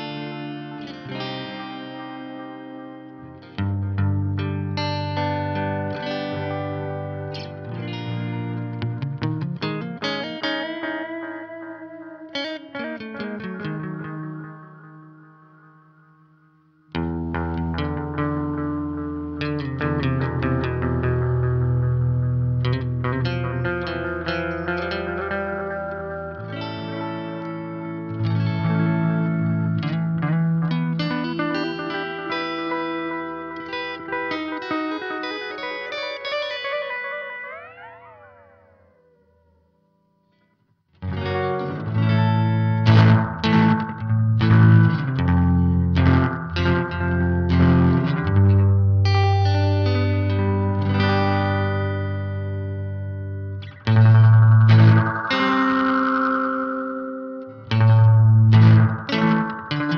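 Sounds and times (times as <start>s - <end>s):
electric guitar with echoing delay: 0.0s - 59.9s.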